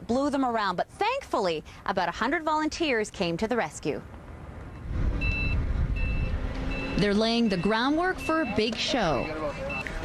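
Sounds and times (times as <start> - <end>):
forklift engine rumble: 4.4 - 10.0
forklift reversing alarm beeping: 4.8 - 10.0.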